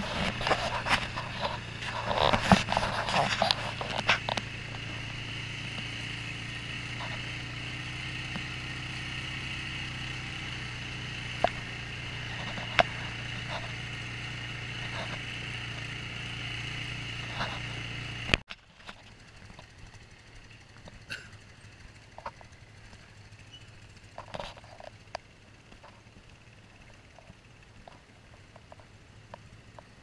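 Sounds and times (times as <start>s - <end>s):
atv engine humming: 0.0s - 30.0s.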